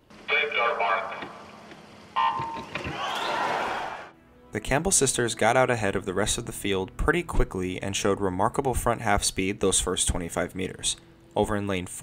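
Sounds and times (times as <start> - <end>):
official speaking over public address: 0.3 - 1.5
crowd noise: 2.2 - 4.1.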